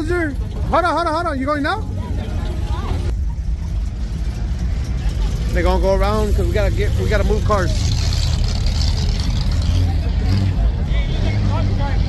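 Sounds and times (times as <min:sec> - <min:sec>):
car engine rumbling: 0:00.0 - 0:12.0
faint voices: 0:00.0 - 0:12.0.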